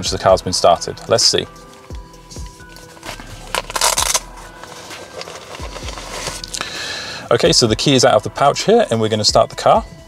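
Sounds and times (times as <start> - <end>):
fabric pouch rustling: 1.8 - 6.6
ripping sound: 2.8 - 4.4.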